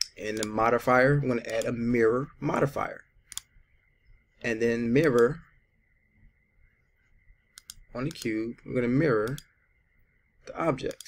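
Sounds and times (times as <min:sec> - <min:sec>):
mouse button clicking: 0:03.3 - 0:03.5, 0:07.5 - 0:08.3.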